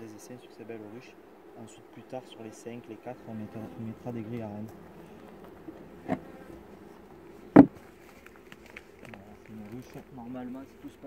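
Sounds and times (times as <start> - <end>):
bees humming: 0.0 - 11.0
wooden cover knocking: 7.5 - 7.8.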